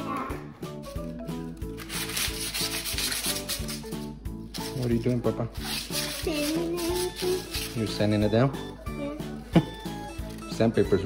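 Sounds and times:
sandpaper rubbing on wood: 0:01.8 - 0:08.2.

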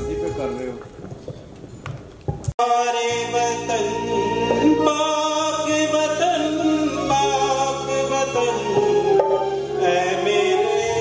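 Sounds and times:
man singing into microphone: 0:02.6 - 0:11.0.

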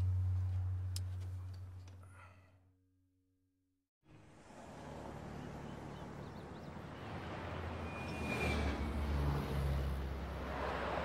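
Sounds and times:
low engine hum: 0:00.0 - 0:02.4
road traffic noise: 0:04.0 - 0:11.0.

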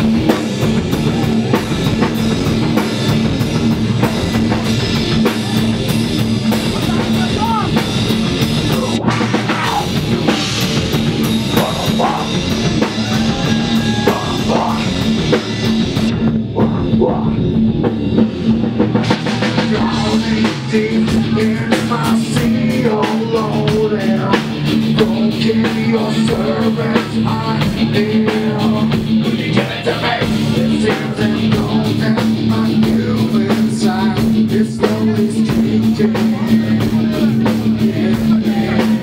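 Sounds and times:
live rock band playing: 0:00.0 - 0:39.0
vocalist singing into a microphone: 0:11.4 - 0:15.5, 0:19.4 - 0:39.0.

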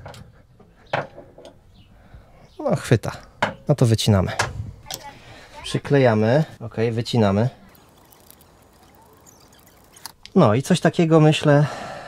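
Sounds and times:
faint ticks: 0:07.7 - 0:10.4.

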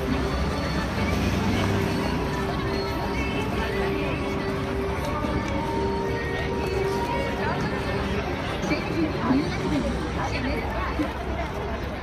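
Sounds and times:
crowd voices: 0:00.0 - 0:12.0
music playing: 0:00.0 - 0:12.0
traffic: 0:00.0 - 0:12.0.

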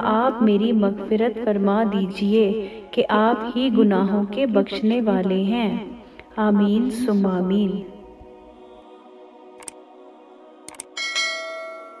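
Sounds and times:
soft ambient music: 0:00.0 - 0:12.0
mouse clicks: 0:09.6 - 0:09.8, 0:10.7 - 0:10.9
bright bell chime: 0:11.0 - 0:12.0.

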